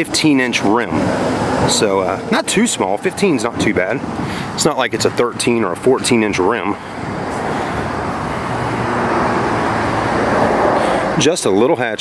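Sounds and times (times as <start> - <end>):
passing vehicle rushing: 0.3 - 11.6.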